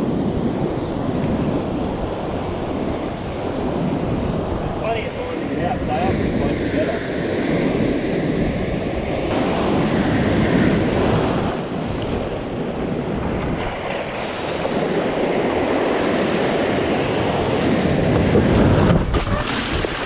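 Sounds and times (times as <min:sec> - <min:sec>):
ocean waves breaking on rocks: 0:09.3 - 0:20.0.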